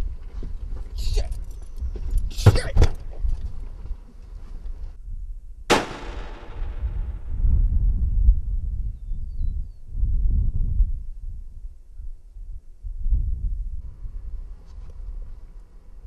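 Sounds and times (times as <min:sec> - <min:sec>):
handgun shot echoing: 0:05.7 - 0:07.4
low rumble: 0:05.7 - 0:08.6.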